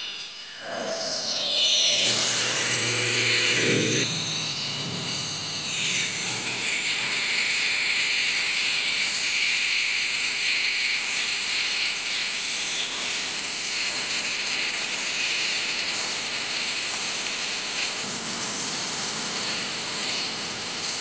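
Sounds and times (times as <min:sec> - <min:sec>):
steady high-pitched hiss: 0:00.0 - 0:21.0.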